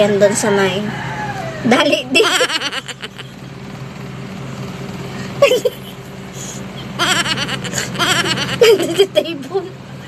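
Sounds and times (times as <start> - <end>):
steady low hum: 0.0 - 10.0
woman laughing: 2.1 - 3.4, 5.3 - 6.0, 6.8 - 9.3.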